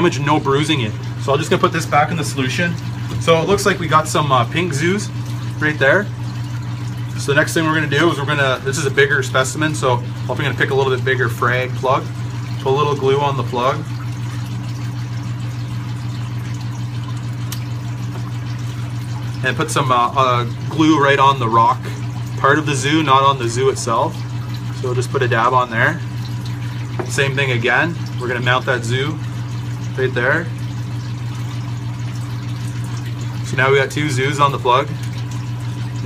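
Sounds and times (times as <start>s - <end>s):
water pump humming: 0.0s - 36.0s.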